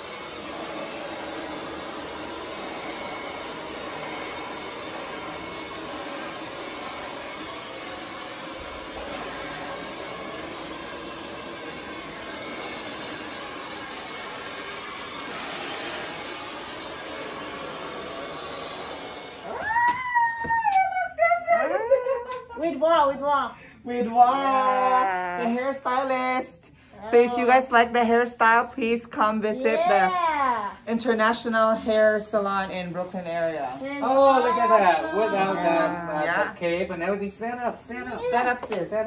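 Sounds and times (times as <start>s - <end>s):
hair dryer running: 0.0s - 20.6s, 31.0s - 36.4s.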